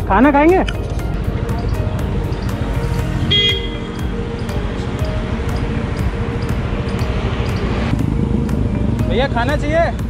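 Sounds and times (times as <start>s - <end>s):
street traffic rumble: 0.0s - 10.0s
faint regular ticking: 0.5s - 2.8s, 4.0s - 8.0s.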